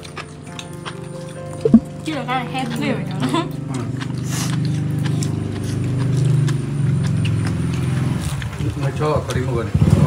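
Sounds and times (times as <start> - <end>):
small engine running: 3.6 - 10.0.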